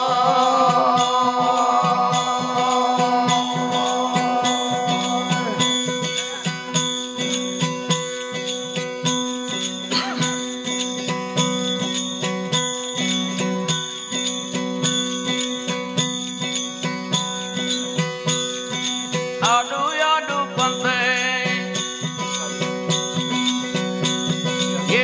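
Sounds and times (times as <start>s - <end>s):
tanpura drone: 0.0s - 19.3s
high wavering melody with vibrato: 0.0s - 25.0s
jingling percussion beat: 0.0s - 25.0s.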